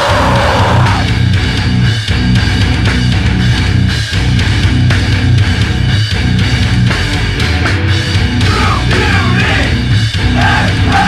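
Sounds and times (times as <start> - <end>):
heavy metal band playing: 0.0 - 11.0.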